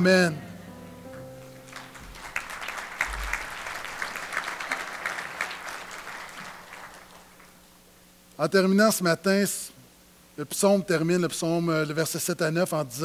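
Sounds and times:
congregation applauding: 1.1 - 7.8.

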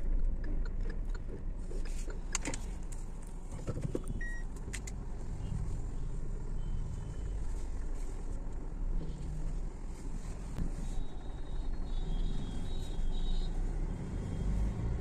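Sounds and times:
engine and tyre rumble: 0.0 - 15.0.

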